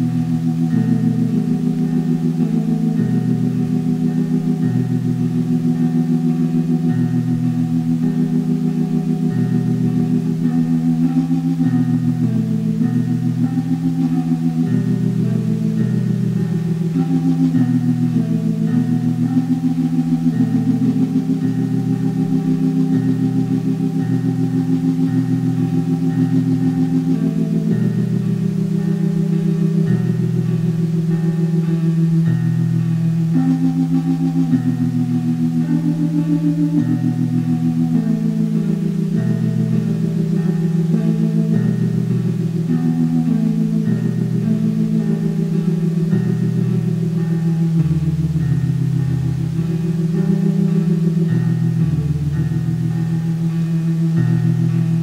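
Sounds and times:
slow synthesizer chords: 0.0s - 55.0s.

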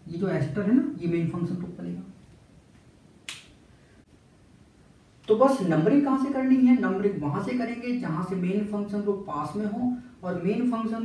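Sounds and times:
sharp click: 3.2s - 3.6s.

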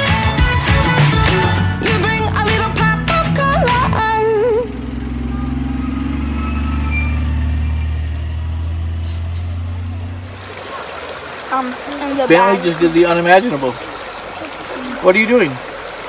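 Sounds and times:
bus engine rumbling: 0.0s - 16.0s.

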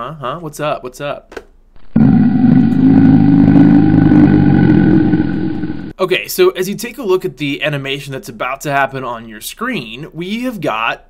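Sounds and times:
low rough growl: 1.8s - 6.0s.

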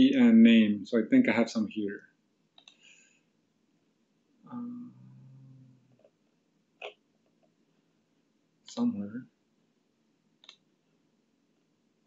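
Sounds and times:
person saying uh: 4.5s - 5.7s.

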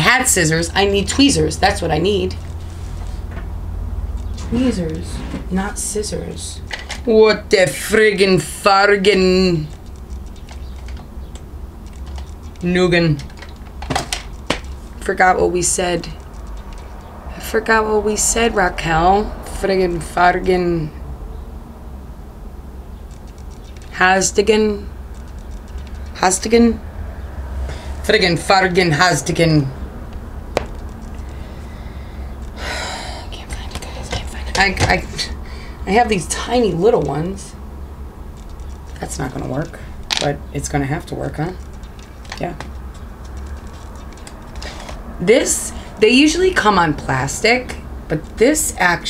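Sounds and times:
steady low hum: 0.0s - 49.0s
small objects clicking: 9.7s - 14.8s, 16.1s - 17.1s, 23.0s - 24.0s, 25.0s - 26.2s, 30.1s - 31.5s, 38.4s - 39.0s, 41.6s - 45.0s
clicks and taps of small items: 13.2s - 14.8s.

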